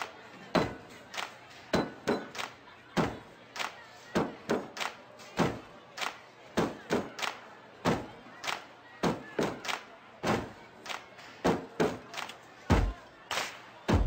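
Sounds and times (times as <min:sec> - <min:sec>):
rhythmic thumps and claps: 0:00.0 - 0:14.0.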